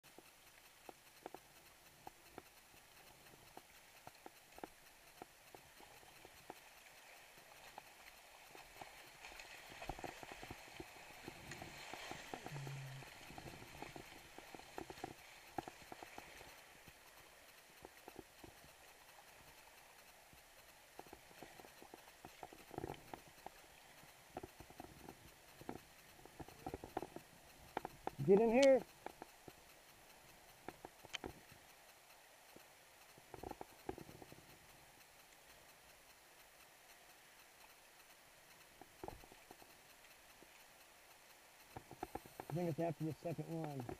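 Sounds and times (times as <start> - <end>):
rushing creek water: 0.1 - 33.9.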